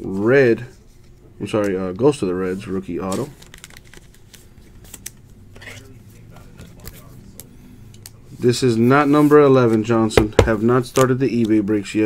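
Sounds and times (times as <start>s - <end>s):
plastic rustling: 2.6s - 7.1s.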